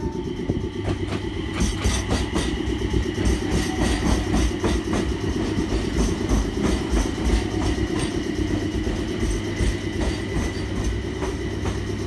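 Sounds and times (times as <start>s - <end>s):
electric train equipment humming: 0.0s - 12.0s.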